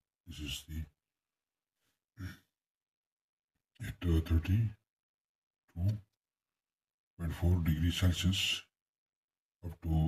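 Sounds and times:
man speaking: 0.3 - 1.0, 3.8 - 4.8, 5.7 - 6.2, 7.2 - 8.7, 9.6 - 10.0.

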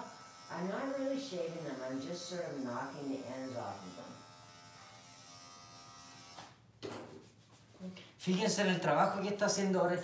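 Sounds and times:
electric clipper humming: 0.0 - 6.6.

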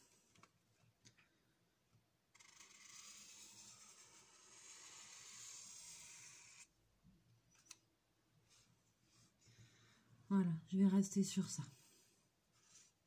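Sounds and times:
marker scratching on paper: 2.4 - 6.7.

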